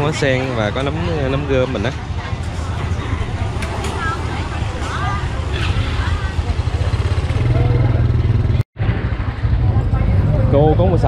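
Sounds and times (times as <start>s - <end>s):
low rumble of motorbike traffic: 0.0s - 11.0s
voices and chatter: 0.0s - 11.0s.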